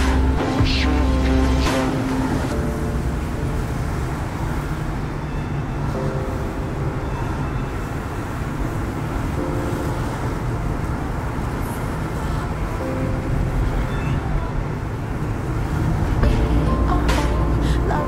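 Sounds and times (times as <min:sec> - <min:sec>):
car driving rumble: 0:00.0 - 0:18.0
faint background music: 0:00.0 - 0:18.0.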